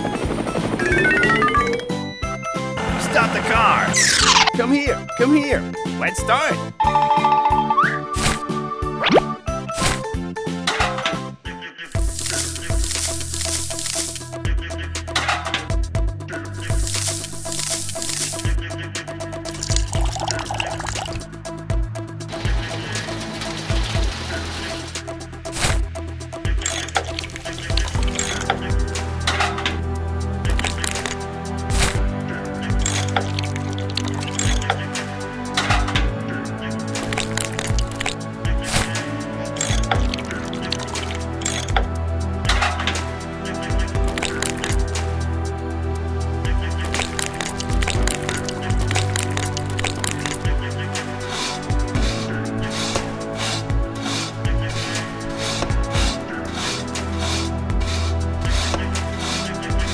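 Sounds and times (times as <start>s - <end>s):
background music: 0.0s - 59.9s.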